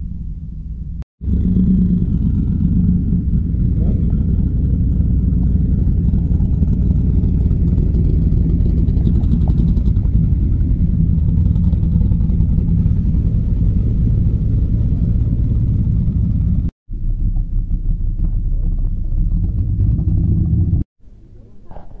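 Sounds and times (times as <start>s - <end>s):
hot rod engines rumbling: 0.0s - 22.0s.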